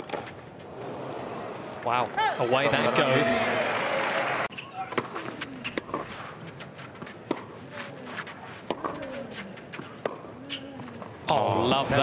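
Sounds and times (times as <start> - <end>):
racket striking tennis ball: 4.9 - 6.4, 7.0 - 11.1.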